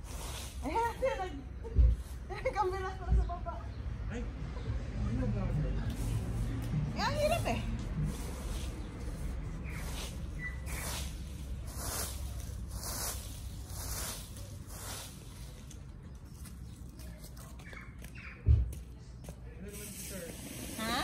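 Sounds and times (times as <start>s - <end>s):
rake sweeping dry leaves: 0.0s - 1.2s, 8.0s - 15.9s, 19.7s - 21.0s.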